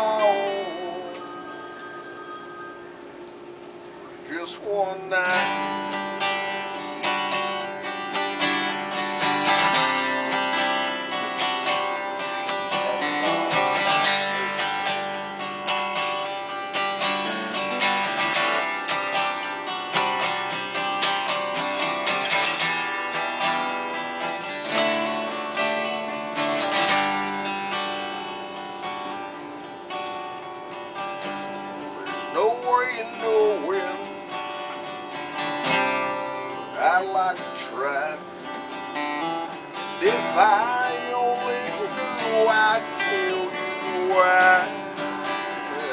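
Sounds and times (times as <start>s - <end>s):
acoustic guitar strumming: 0.0s - 45.9s.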